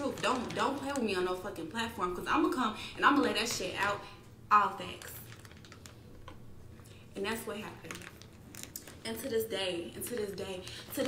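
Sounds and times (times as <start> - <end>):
typing on computer keyboard: 5.3 - 6.0.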